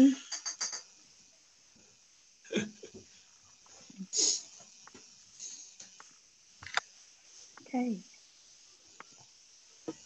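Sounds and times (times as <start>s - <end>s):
faint small noises: 0.0s - 10.0s.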